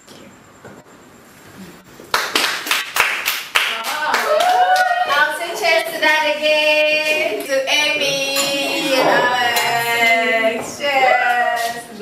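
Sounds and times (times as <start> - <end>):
hands clapping in rhythm: 2.1 - 5.0
voices singing: 4.8 - 12.0.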